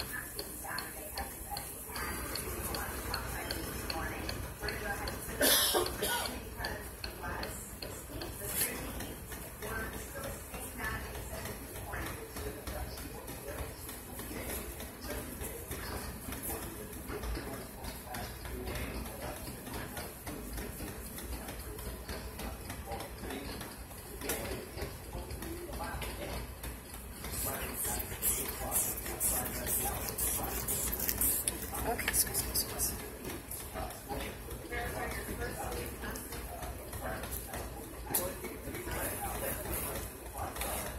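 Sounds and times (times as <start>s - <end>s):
indistinct voices talking: 27.0s - 34.5s.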